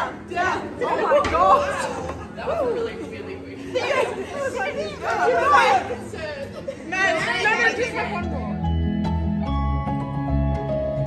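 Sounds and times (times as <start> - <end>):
women talking and exclaiming: 0.0 - 8.7
background music: 0.0 - 11.0.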